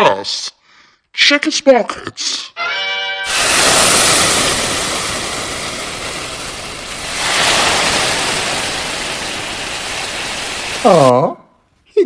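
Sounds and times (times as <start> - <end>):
loud rushing noise: 3.3 - 10.8.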